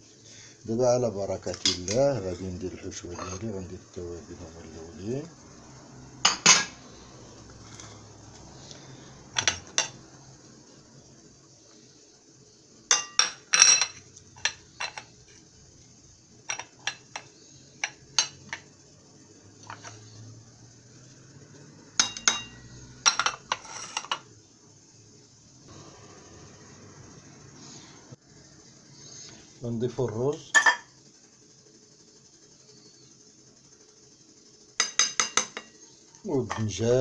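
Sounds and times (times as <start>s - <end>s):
utensils clinking against a bowl: 9.4s - 10.0s, 12.9s - 15.1s, 16.5s - 18.7s, 19.6s - 20.0s, 22.0s - 24.3s, 34.8s - 35.8s, 36.4s - 36.8s.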